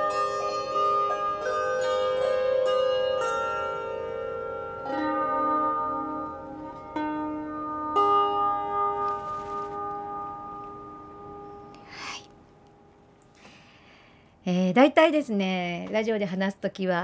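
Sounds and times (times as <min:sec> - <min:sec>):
lyre plucked chords: 0:00.0 - 0:13.2.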